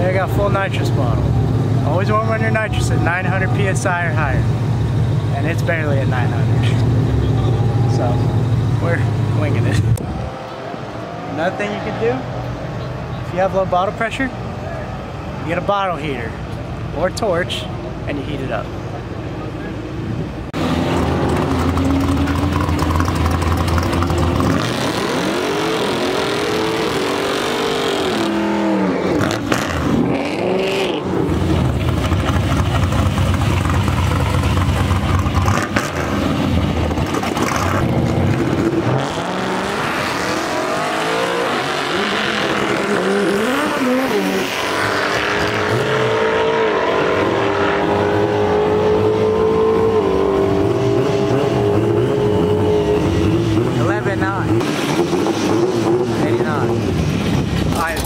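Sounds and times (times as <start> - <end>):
truck engine revving hard: 20.5 - 58.0.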